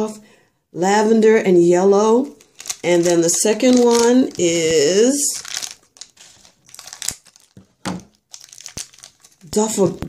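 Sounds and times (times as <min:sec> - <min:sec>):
plastic wrapper crinkling: 0:02.2 - 0:10.0.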